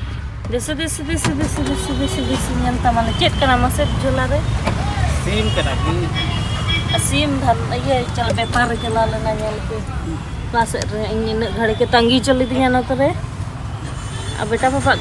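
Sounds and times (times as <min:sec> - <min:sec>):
people talking: 0:00.5 - 0:04.4, 0:05.1 - 0:06.1, 0:07.0 - 0:13.2, 0:14.4 - 0:15.0.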